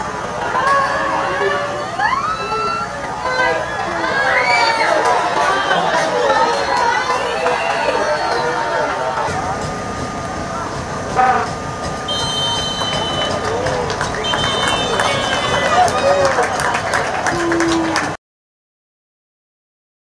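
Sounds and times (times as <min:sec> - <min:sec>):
steady background hum: 0:00.0 - 0:18.2
shouts and voices: 0:00.4 - 0:09.3, 0:12.1 - 0:16.6
high-pitched tones: 0:10.2 - 0:15.9.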